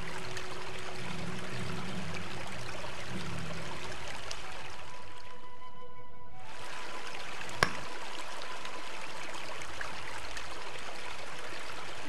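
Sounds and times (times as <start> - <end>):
stream running over rocks: 0.0 - 5.4, 6.4 - 12.0
faint music tones: 0.0 - 12.0.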